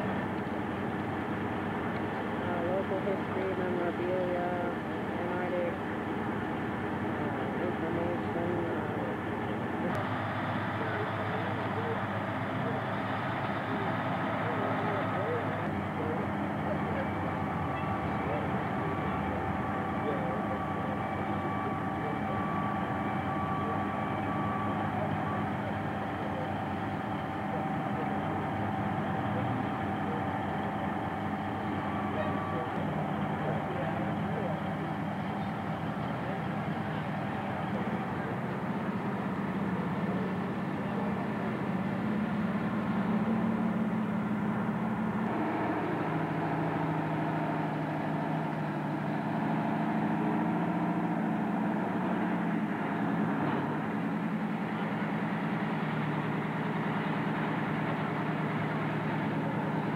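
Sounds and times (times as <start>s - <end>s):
heavy machinery engine drone: 0.0s - 59.9s
indistinct voices: 2.0s - 50.8s.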